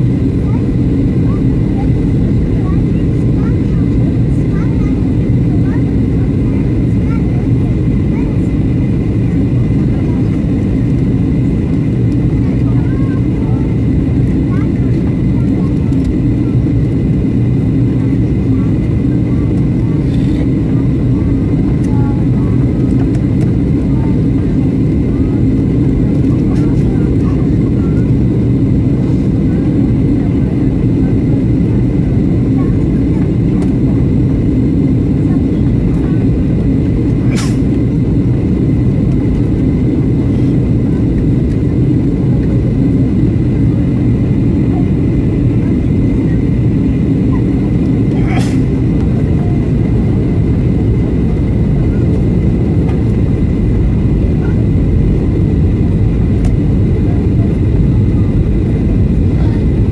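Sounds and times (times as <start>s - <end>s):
airliner cabin engine drone: 0.0s - 59.9s.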